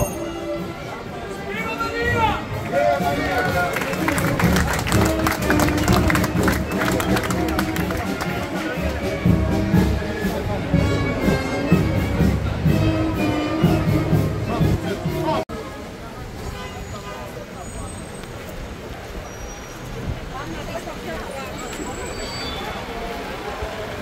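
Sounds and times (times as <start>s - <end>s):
procession band music: 0.0s - 15.5s
crowd chatter: 0.0s - 24.0s.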